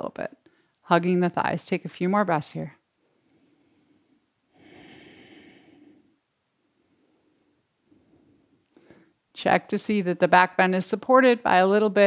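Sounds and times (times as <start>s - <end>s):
woman breathing: 0.4s - 0.8s, 3.0s - 9.3s.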